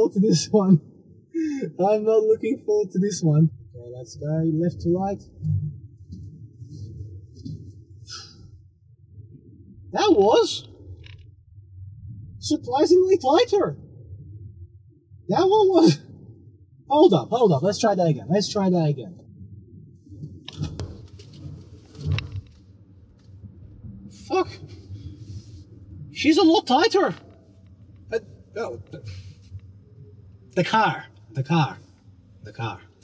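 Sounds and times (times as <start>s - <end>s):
car cabin road rumble: 20.2s - 29.7s, 30.5s - 33.0s.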